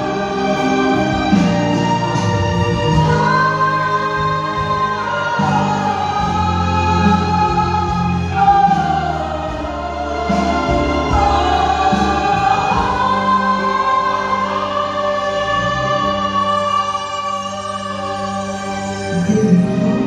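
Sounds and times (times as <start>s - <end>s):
backing music: 0.0s - 20.0s
women singing: 0.0s - 20.0s.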